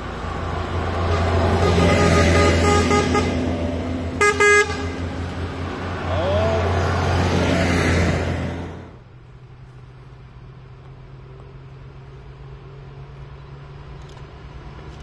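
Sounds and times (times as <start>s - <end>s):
buses driving past: 0.0s - 15.0s
bus horn toots: 1.0s - 5.4s.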